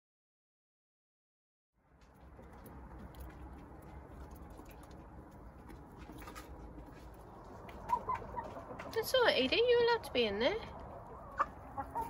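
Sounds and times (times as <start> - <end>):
hens clucking: 3.0 - 12.0
hens murmuring: 3.3 - 12.0.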